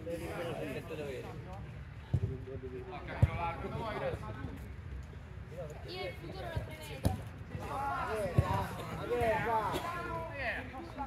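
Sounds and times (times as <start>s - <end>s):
football kick thuds: 8.2s - 9.5s.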